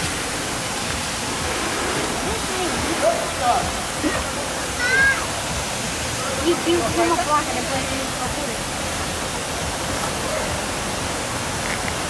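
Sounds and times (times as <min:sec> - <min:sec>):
street ambience hiss: 0:00.0 - 0:12.0.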